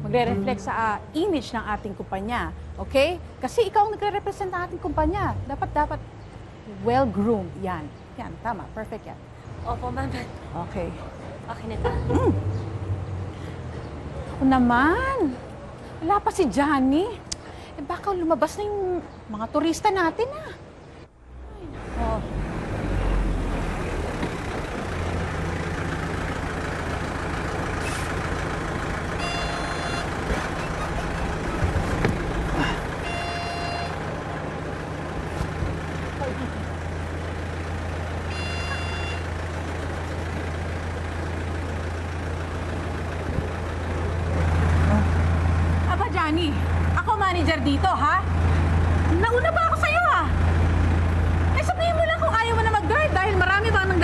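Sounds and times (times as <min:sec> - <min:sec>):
minibus engine humming: 0:00.0 - 0:54.0
short high-pitched beeps: 0:33.0 - 0:34.0, 0:38.3 - 0:39.3.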